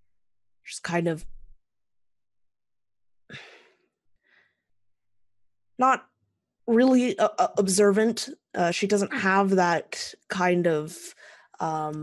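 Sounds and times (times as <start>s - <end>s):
person sighing: 3.3s - 3.8s.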